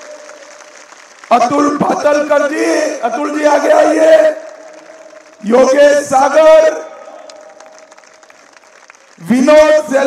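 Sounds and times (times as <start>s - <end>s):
distant crowd applauding: 0.0s - 10.0s.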